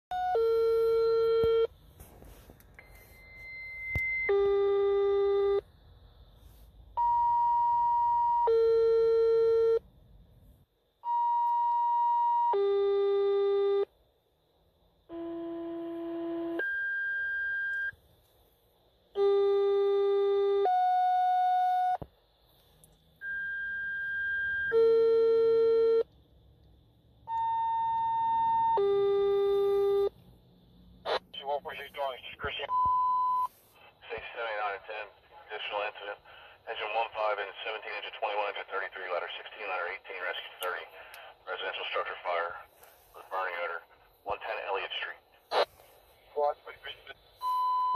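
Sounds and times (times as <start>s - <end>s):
two-tone paging beeps from radio: 0.1s - 1.7s, 2.8s - 5.6s, 7.0s - 9.8s, 27.3s - 30.1s, 31.4s - 38.7s, 46.8s - 47.9s.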